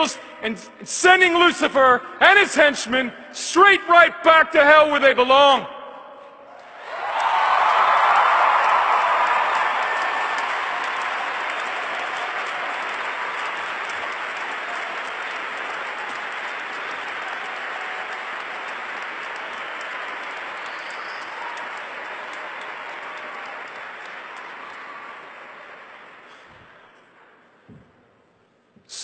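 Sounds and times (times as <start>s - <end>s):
large audience applauding: 6.6s - 27.2s.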